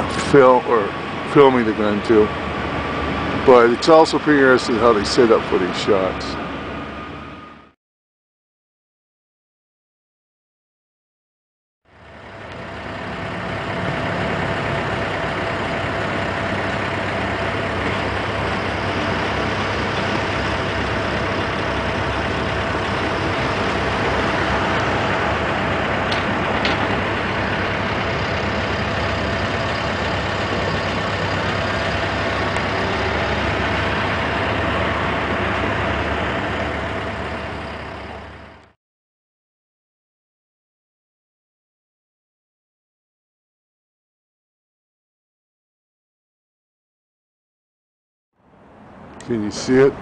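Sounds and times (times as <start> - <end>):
large engine idling: 0.0 - 7.8, 11.9 - 38.8, 48.6 - 50.0
street noise: 0.0 - 7.8, 11.9 - 38.8, 48.4 - 50.0.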